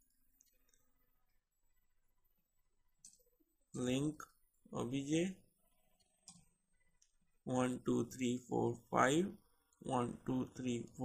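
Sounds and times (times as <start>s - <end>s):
computer keys clicking: 3.0s - 3.3s, 6.0s - 7.1s
man's voice: 7.5s - 11.0s.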